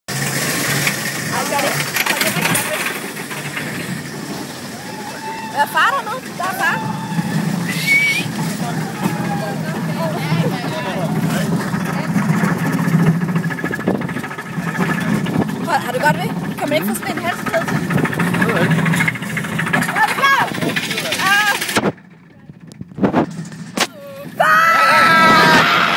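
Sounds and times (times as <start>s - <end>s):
sharp clatters: 0.1s - 24.0s
roller coaster wheel rumble: 0.1s - 25.9s
rushing wind: 1.1s - 25.9s
wind buffeting microphone: 5.4s - 25.9s.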